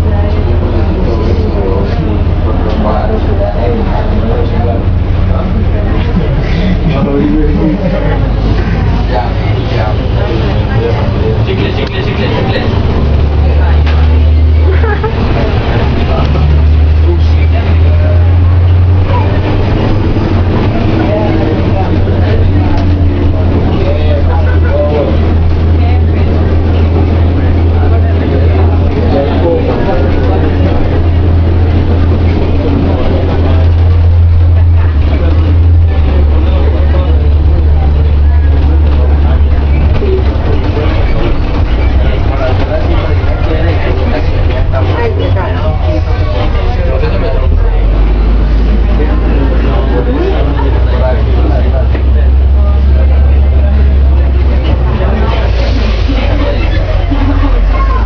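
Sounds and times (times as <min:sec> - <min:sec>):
bus engine drone: 0:00.0 - 0:58.0
indistinct passenger chatter: 0:00.0 - 0:58.0.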